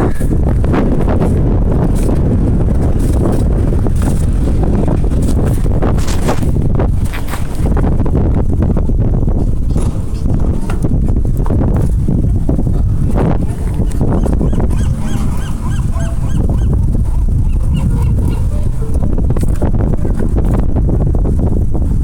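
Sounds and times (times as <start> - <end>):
bike clicks and rattles: 0.0 - 15.4
wind and road rumble: 0.0 - 22.0.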